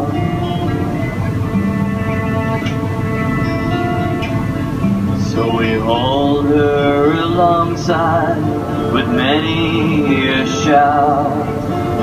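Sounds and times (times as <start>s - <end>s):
folk band playing: 0.0s - 12.0s
plucked guitar: 0.0s - 12.0s
steady low hum: 0.0s - 12.0s.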